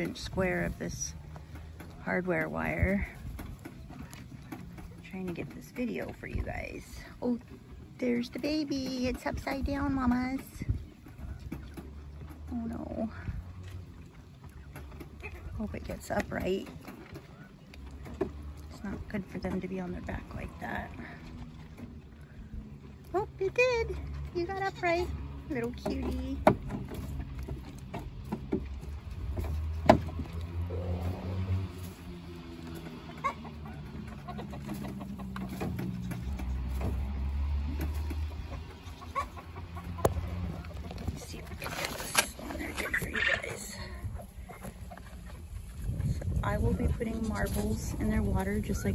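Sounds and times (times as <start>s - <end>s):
wind rumble on microphone: 8.0s - 13.7s, 39.9s - 48.9s
quail soft low clucking: 10.4s - 19.4s, 26.8s - 47.4s.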